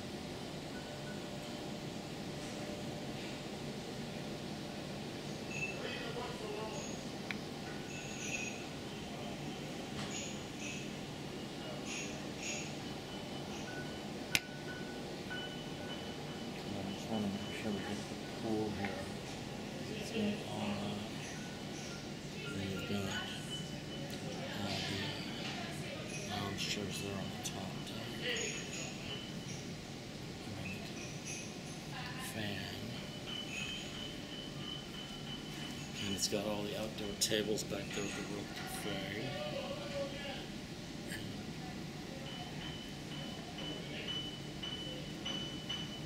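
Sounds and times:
room murmur: 0:00.0 - 0:46.0
thin high-pitched whine: 0:05.2 - 0:46.0.

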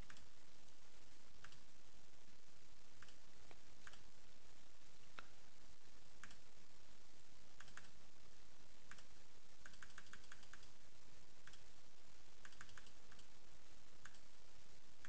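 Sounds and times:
faint computer mouse clicks: 0:01.4 - 0:01.6, 0:03.0 - 0:04.0, 0:06.2 - 0:06.4, 0:07.6 - 0:07.9, 0:08.9 - 0:10.7, 0:11.4 - 0:11.6, 0:12.4 - 0:13.3, 0:14.0 - 0:14.2.

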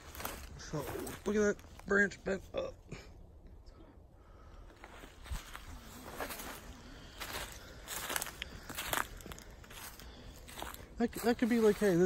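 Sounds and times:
footsteps on dry leaves: 0:00.0 - 0:01.9, 0:04.8 - 0:12.0.

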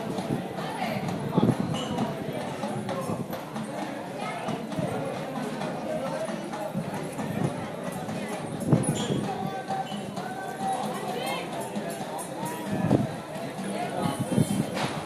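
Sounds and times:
indistinct chatter of voices: 0:00.0 - 0:15.0.

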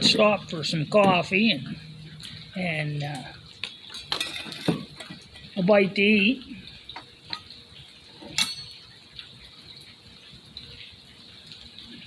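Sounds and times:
faint steady hiss: 0:00.0 - 0:12.0
metal cookware clicks and taps: 0:08.3 - 0:08.9
ringing metal clink: 0:08.4 - 0:08.9.

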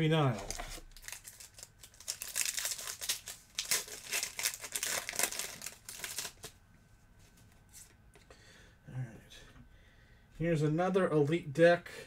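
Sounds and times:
wrapper crinkling torn open: 0:00.3 - 0:06.6.

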